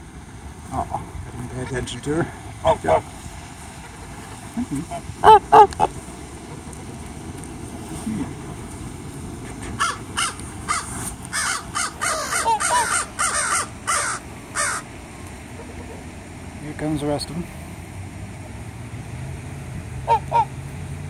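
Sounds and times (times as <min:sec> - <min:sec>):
geese honking: 0:09.7 - 0:14.9, 0:20.0 - 0:20.5.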